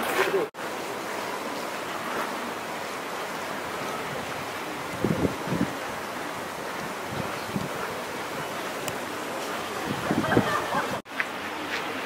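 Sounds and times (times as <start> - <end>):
low wind buffets: 3.4 - 11.0
wind rushing on microphone: 3.7 - 9.1, 9.7 - 11.0.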